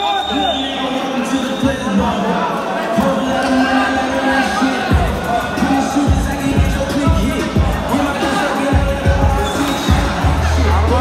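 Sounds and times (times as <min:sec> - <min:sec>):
crowd chatter: 0:00.0 - 0:11.0
loud music with bass drum: 0:04.4 - 0:11.0.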